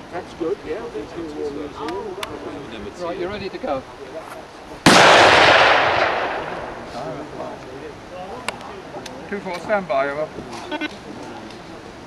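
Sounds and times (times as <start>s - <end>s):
rifle shot echoing: 4.8s - 6.9s.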